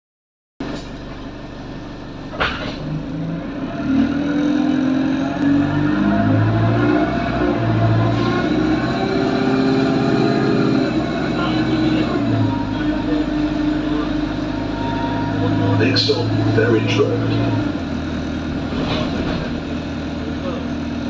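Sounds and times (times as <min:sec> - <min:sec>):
bus diesel engine humming: 0:00.6 - 0:21.0.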